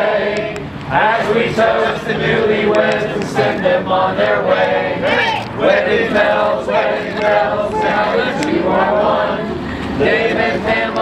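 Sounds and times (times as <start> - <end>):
group singing together: 0.0 - 11.0.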